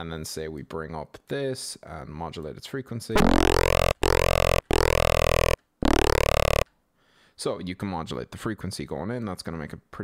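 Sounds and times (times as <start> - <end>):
distorted synth notes sweeping: 3.2 - 6.6.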